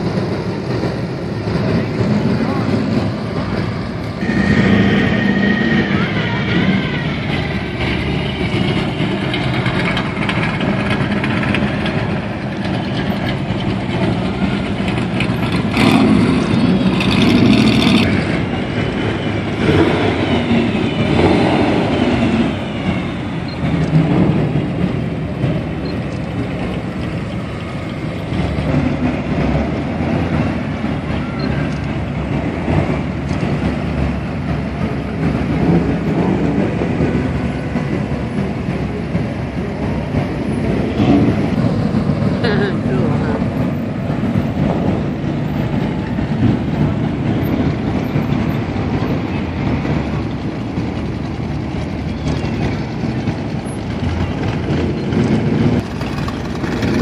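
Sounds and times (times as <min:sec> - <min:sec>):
car engines rumbling past: 0:00.0 - 0:57.0.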